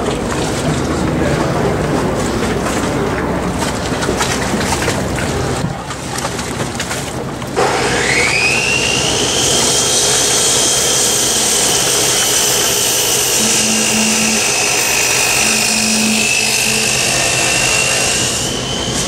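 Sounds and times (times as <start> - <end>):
machine whining: 7.6 - 19.0.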